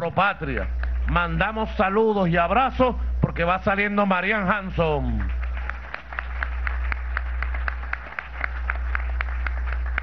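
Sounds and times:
steady low hum: 0:00.0 - 0:10.0
hands clapping in rhythm: 0:00.4 - 0:01.5, 0:05.0 - 0:10.0.

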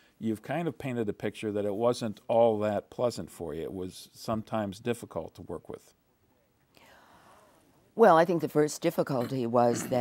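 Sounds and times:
woman drawing breath: 0:06.8 - 0:07.7.

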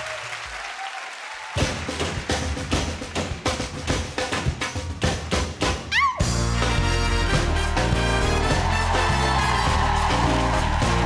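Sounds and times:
audience applause: 0:00.0 - 0:03.5, 0:07.6 - 0:11.0
samba percussion: 0:01.5 - 0:11.0.

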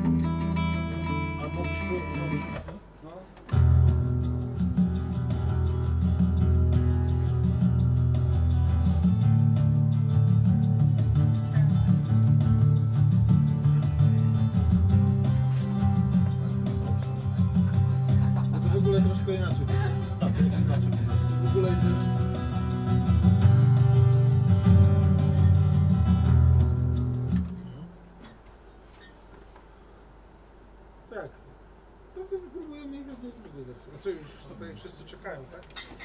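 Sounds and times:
guitar music: 0:00.0 - 0:02.9, 0:03.5 - 0:28.2.

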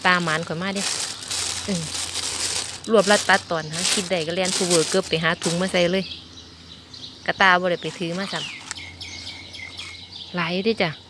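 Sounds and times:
bird calling: 0:00.0 - 0:11.0.

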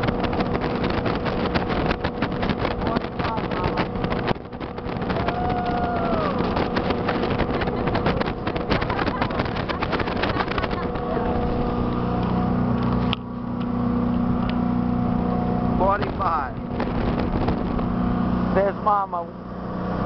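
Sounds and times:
high engine whine: 0:00.0 - 0:20.0
speedboat engine running: 0:00.0 - 0:20.0
wind buffeting microphone: 0:00.0 - 0:20.0.

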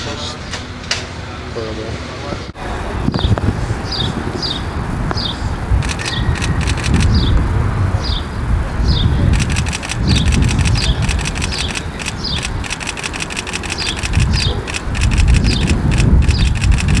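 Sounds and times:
wind: 0:00.0 - 0:17.0
traffic rumble: 0:02.4 - 0:17.0.

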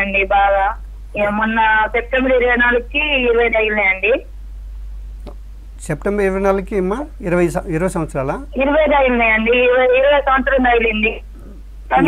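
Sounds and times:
person talking over telephone: 0:00.0 - 0:04.2, 0:08.6 - 0:11.2.

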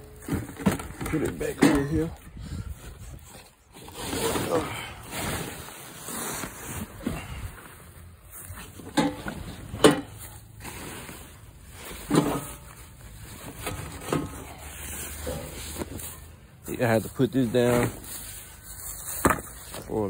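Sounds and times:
fabric and plastic sheeting rustling: 0:02.7 - 0:20.0.

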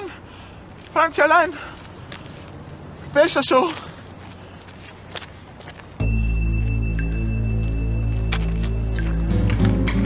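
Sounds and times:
faint outdoor background noise: 0:00.0 - 0:10.0
soft footsteps: 0:01.7 - 0:10.0.

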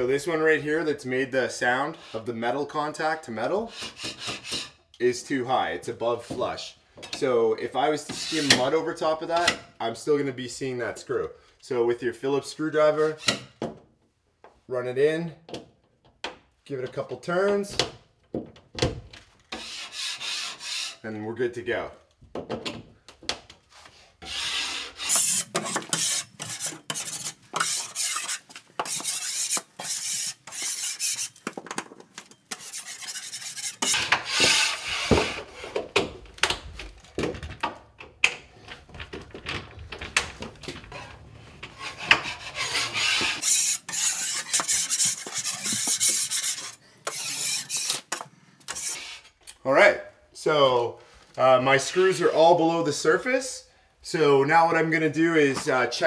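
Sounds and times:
putty knife scraping drywall: 0:03.7 - 0:04.8, 0:19.5 - 0:21.0, 0:23.8 - 0:35.8, 0:40.9 - 0:49.4.

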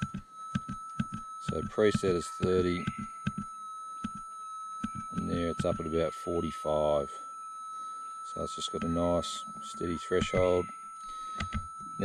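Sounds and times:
metal detector high hum: 0:00.0 - 0:12.0.

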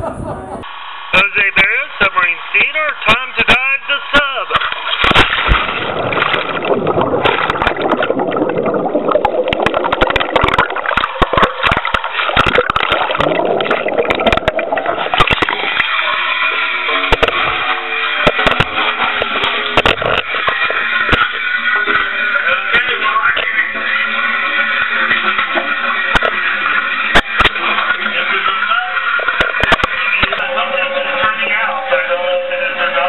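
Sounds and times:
water churning and bubbling: 0:04.5 - 0:30.4
sharp clicks and knocks: 0:17.1 - 0:17.5, 0:18.2 - 0:21.3.

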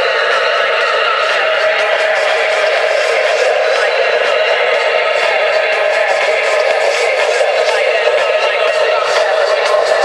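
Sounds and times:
tech house music over sound system: 0:00.0 - 0:10.0.

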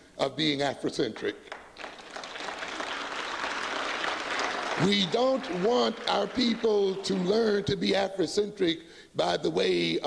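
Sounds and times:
audience applauding: 0:01.5 - 0:07.5.

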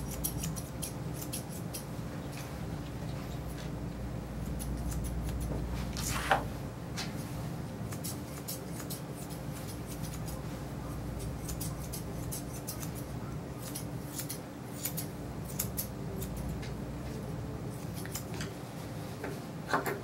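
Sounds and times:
grooming shears snipping: 0:00.0 - 0:03.6, 0:07.9 - 0:10.4, 0:11.2 - 0:18.6.

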